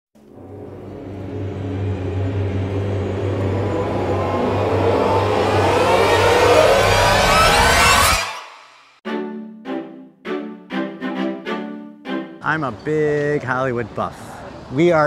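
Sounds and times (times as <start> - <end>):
low steady drone: 0.2 - 7.9
rising pitch sweeps: 0.2 - 12.6.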